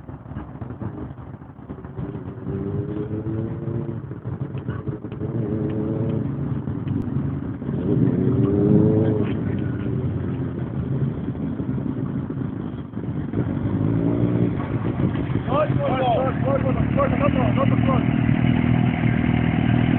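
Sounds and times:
motorcycle engine revving: 0.0s - 19.9s
road rumble: 0.0s - 19.9s.

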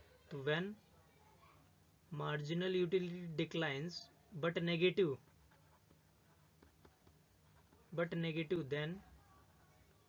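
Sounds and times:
stylus scratching on tablet: 4.7s - 8.4s.

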